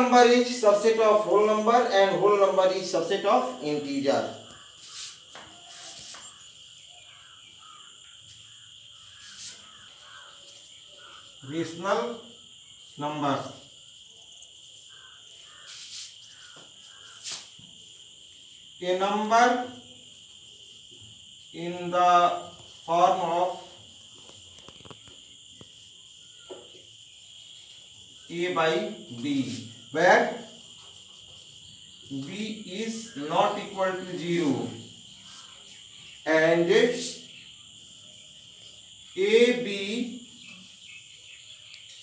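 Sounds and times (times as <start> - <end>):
cricket trilling: 0.0 - 42.0
insect chirring: 0.0 - 42.0
marker scratching on whiteboard: 4.8 - 6.5, 9.1 - 9.7, 15.6 - 17.6.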